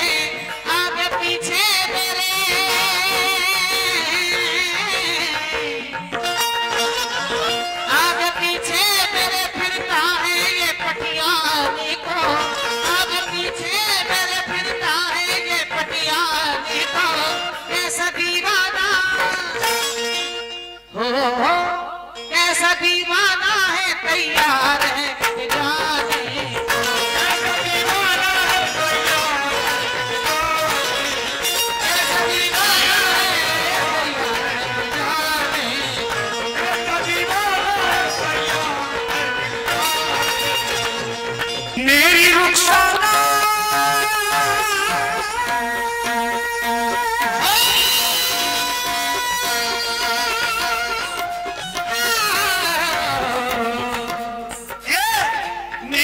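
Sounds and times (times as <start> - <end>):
live devotional music: 0.0 - 56.0.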